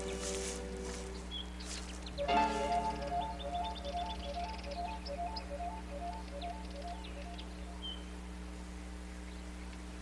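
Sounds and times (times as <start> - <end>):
soft background music: 0.0 - 7.7
bird chirps: 0.0 - 8.2
low electrical hum: 0.0 - 10.0.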